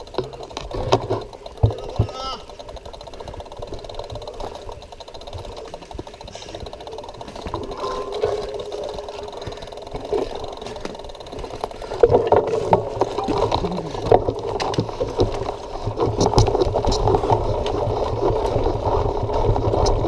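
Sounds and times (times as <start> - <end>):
bike knocking over bumps: 0.0 - 20.0
mountain bike rattling on trail: 0.0 - 20.0.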